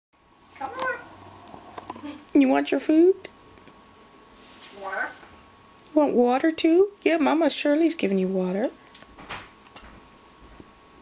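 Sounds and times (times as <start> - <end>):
parrot call bending in pitch: 0.6 - 1.3.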